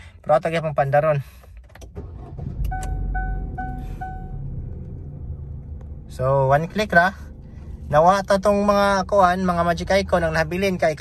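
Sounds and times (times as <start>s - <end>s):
car engine starting and idling: 0.0s - 11.0s
dashboard warning chime beeps: 2.6s - 4.4s.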